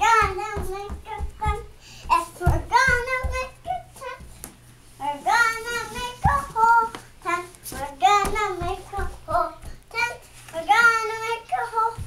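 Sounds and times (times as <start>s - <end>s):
child singing: 0.0s - 4.3s, 5.0s - 12.0s.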